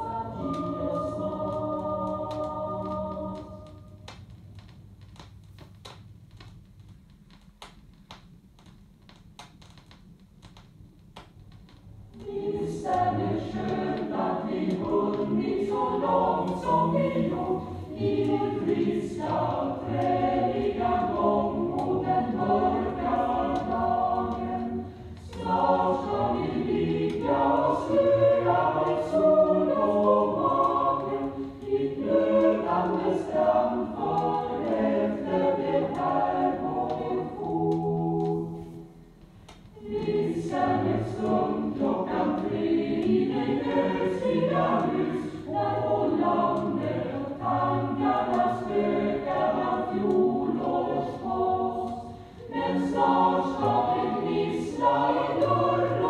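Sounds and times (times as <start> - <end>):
choir singing: 0.0 - 4.0, 12.1 - 39.0, 39.7 - 56.0
vinyl record clicks and surface noise: 0.0 - 56.0.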